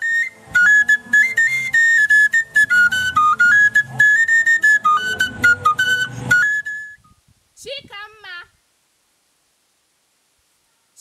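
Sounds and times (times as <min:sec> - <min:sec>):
flute-like film music melody: 0:00.0 - 0:07.2
low pulsing accompaniment: 0:00.3 - 0:06.5.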